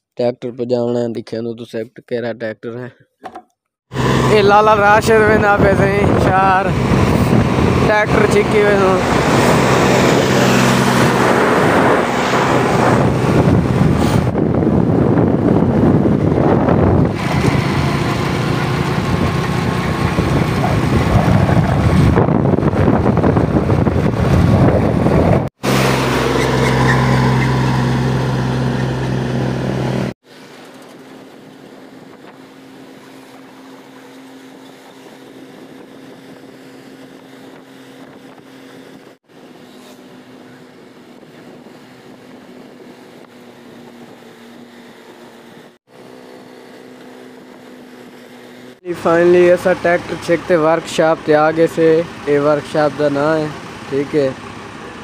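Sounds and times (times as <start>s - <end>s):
tractor diesel engine running: 3.9s - 14.1s, 15.4s - 34.6s, 45.9s - 55.0s
wind buffeting microphone: 4.0s - 25.5s, 31.1s - 45.8s.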